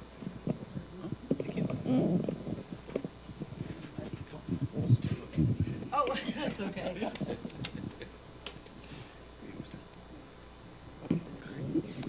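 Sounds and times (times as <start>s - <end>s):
microphones knocking and thumping: 0.2s - 6.2s, 7.0s - 8.7s
low voices: 0.4s - 8.2s.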